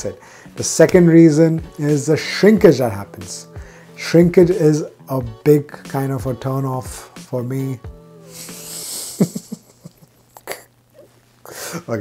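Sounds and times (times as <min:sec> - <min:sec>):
faint background music: 0:00.0 - 0:12.0
man stifling a laugh: 0:08.4 - 0:10.7.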